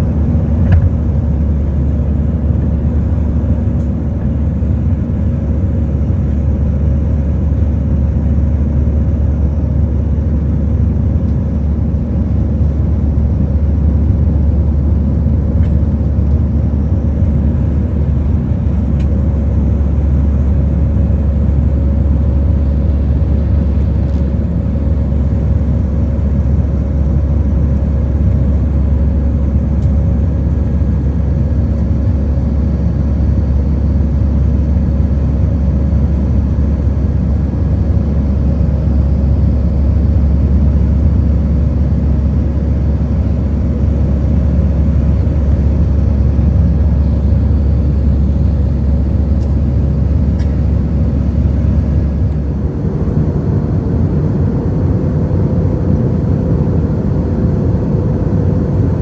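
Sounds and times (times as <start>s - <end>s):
faint steady hum: 0.0s - 59.0s
jet engine cabin rumble: 0.0s - 59.0s.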